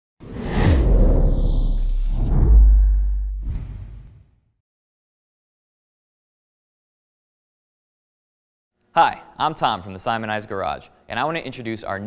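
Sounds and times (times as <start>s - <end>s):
logo whoosh: 0.2s - 4.5s
deep rumble: 0.3s - 4.3s.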